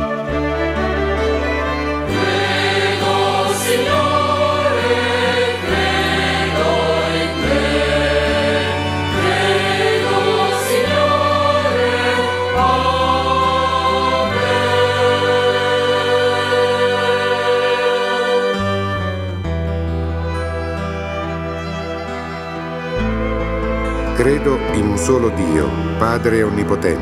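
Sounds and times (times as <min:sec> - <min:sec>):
choir singing: 0:01.0 - 0:19.4.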